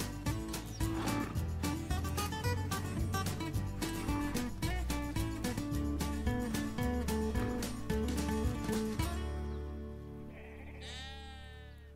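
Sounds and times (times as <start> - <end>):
sheep bleating: 10.2 - 11.9.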